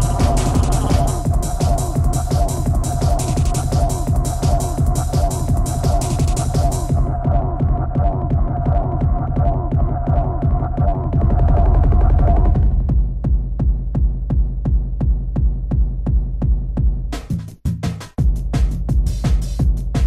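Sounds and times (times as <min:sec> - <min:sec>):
hi-hats: 0:00.0 - 0:07.1, 0:18.2 - 0:20.0
heavy bass: 0:00.0 - 0:20.0
kick drum: 0:00.0 - 0:20.0.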